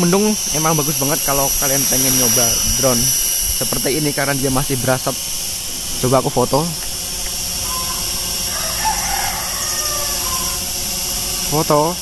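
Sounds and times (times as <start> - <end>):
quadcopter hovering whine: 0.0 - 12.0.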